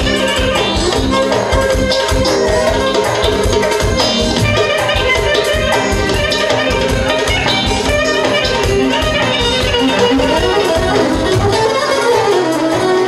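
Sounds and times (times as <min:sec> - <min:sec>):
clarinet melody: 0:00.0 - 0:13.0
keyboard: 0:00.0 - 0:13.0
steady drum beat: 0:00.0 - 0:13.0.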